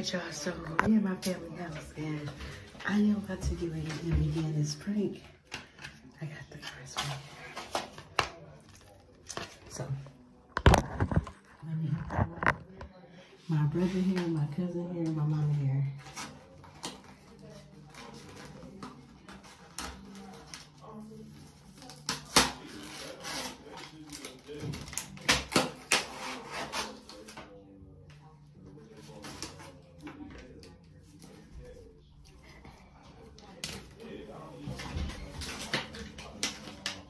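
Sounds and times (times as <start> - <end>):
paper rustling and ripping: 16.0 - 27.6, 28.8 - 31.9.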